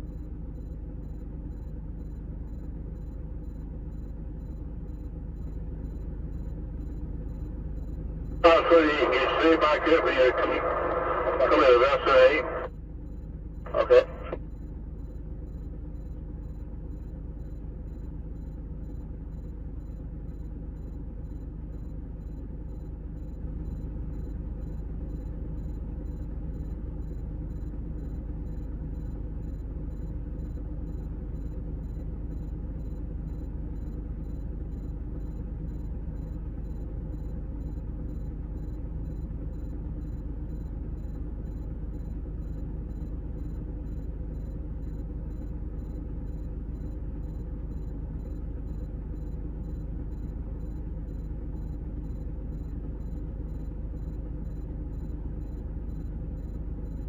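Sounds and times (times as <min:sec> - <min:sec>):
diesel engine rumble: 0:00.0 - 0:57.0.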